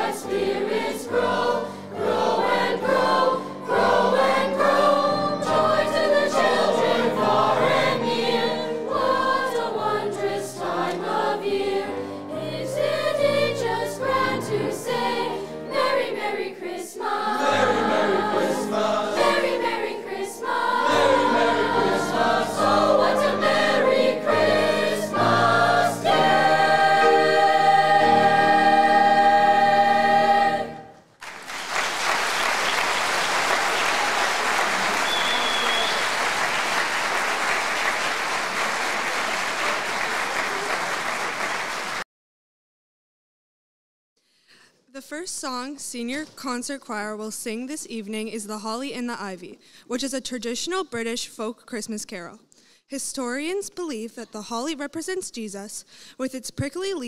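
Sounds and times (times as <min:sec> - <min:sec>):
choir singing in harmony: 0:00.0 - 0:31.1
audience applause: 0:31.2 - 0:42.0.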